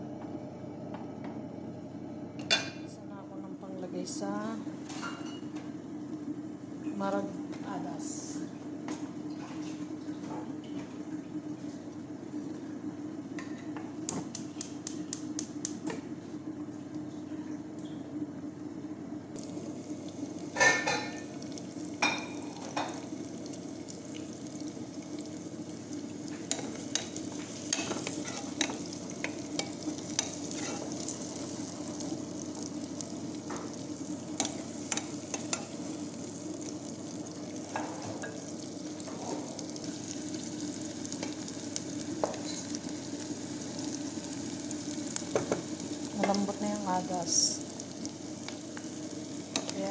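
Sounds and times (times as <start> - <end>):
onions clattering into oil: 19.4 - 46.6
onions sizzling in hot oil: 19.4 - 49.9.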